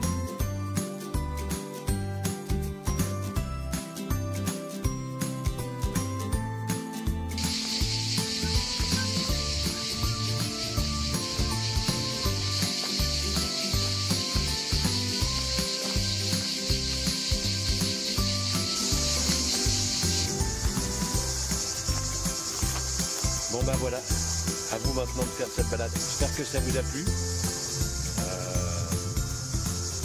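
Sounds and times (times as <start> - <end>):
background music with bass beat: 7.2 - 30.0
cicadas chorus: 7.4 - 30.0.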